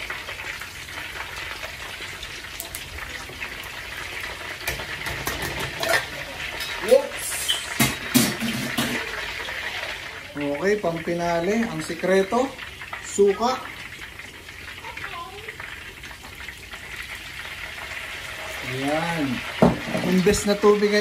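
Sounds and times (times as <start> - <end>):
meat sizzling in hot oil: 0.0 - 21.0
oil popping and crackling: 0.0 - 21.0.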